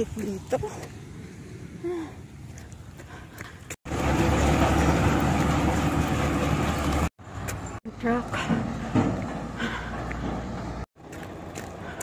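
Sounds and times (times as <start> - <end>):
heavy dump trucks rumbling: 3.9 - 12.0.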